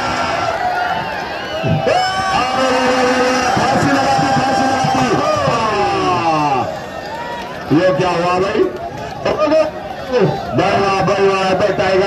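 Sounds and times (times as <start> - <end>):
crowd hubbub: 0.0 - 12.0
men shouting: 1.6 - 6.8.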